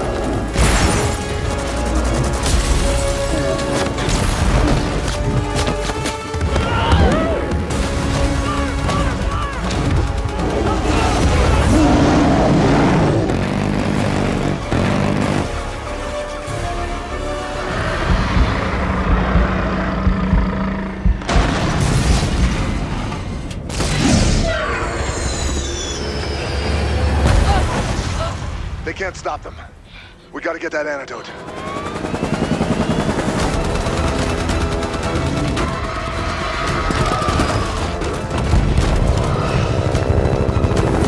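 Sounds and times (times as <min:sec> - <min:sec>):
helicopter rotor chop: 0:00.0 - 0:06.5, 0:07.6 - 0:15.8, 0:17.3 - 0:21.4, 0:30.5 - 0:41.0
dramatic film music: 0:00.0 - 0:41.0.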